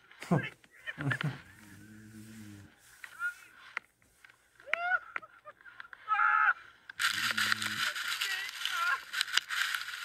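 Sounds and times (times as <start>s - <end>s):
voices crying out: 4.6s - 9.1s
person crying out: 6.0s - 6.6s.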